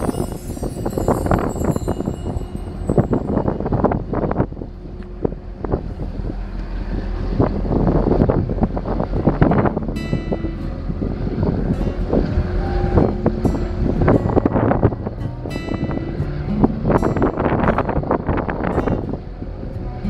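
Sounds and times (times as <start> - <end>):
steady low rumble: 0.0 - 20.0
wind buffeting microphone: 0.0 - 20.0.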